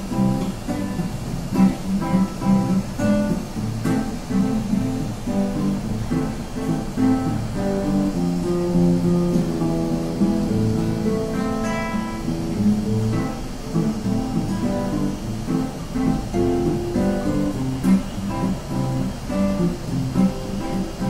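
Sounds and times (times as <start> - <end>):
acoustic guitar flatpicking: 0.0 - 21.0.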